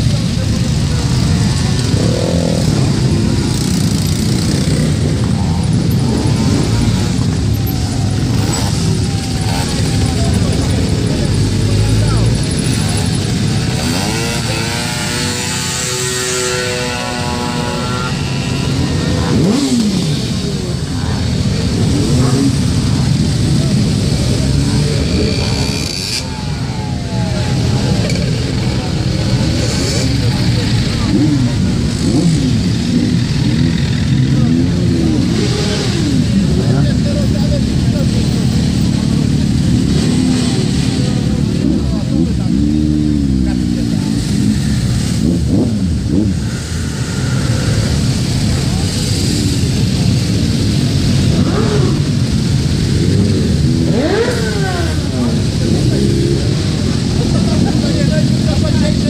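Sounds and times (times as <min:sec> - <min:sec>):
engines revving: 0:00.0 - 0:59.0
motorcycle engines idling: 0:00.0 - 0:59.0
voices: 0:00.0 - 0:59.0.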